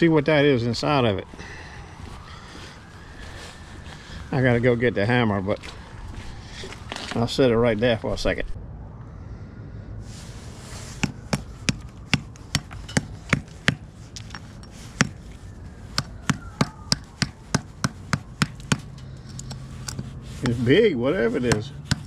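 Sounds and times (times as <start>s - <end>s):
hammer cracking crust: 15.9s - 20.6s.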